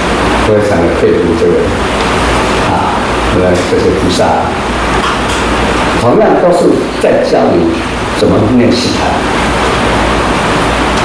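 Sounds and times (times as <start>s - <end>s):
man lecturing: 0.4s - 1.8s, 2.6s - 4.6s, 6.0s - 9.4s.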